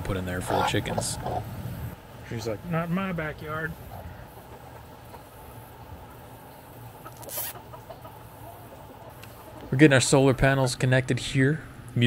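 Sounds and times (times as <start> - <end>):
hens clucking softly: 0.3 - 1.6, 3.8 - 10.8
short high rustle: 7.2 - 7.6.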